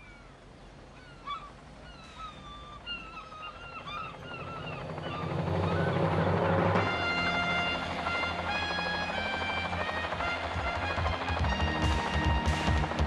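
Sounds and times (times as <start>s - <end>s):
seagulls calling: 0.0s - 13.0s.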